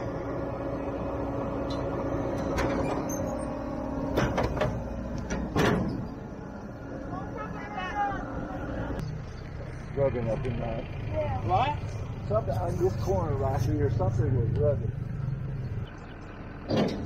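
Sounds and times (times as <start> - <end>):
tractor and baler humming: 0.0 - 17.0
baler tailgate clanks and knocks: 2.4 - 3.5, 4.1 - 6.2, 16.6 - 17.0.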